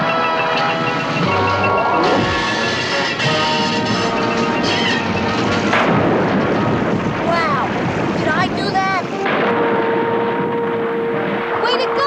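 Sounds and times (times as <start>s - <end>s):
held musical note: 0.0s - 5.8s, 9.0s - 12.0s
rush and rumble of water: 0.0s - 12.0s.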